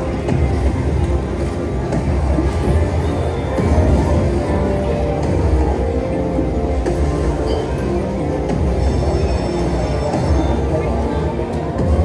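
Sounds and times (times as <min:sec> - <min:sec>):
electronic slot machine music: 0:00.0 - 0:12.0.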